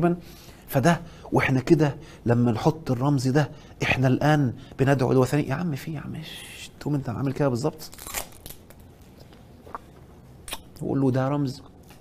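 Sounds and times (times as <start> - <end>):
plastic wrapper crinkling: 7.8 - 9.1.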